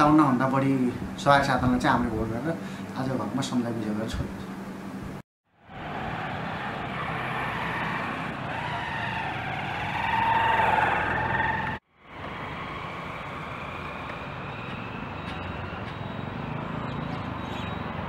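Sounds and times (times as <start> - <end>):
traffic noise: 5.5 - 18.0.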